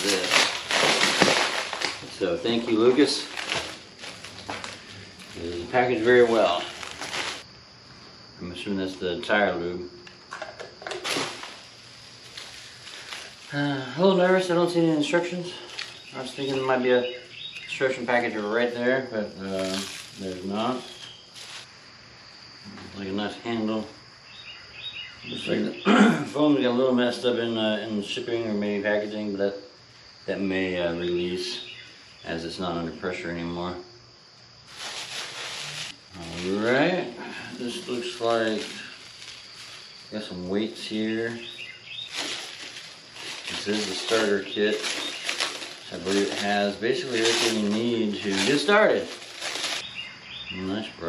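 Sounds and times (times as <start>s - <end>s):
plastic wrapping crinkling: 0.0s - 7.5s, 10.8s - 17.7s, 19.5s - 21.8s, 34.6s - 50.1s.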